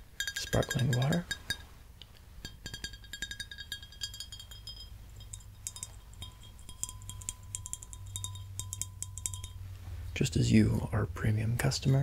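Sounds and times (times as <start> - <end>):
fingernails tapping glass bottle: 0.2 - 1.7, 2.4 - 9.6.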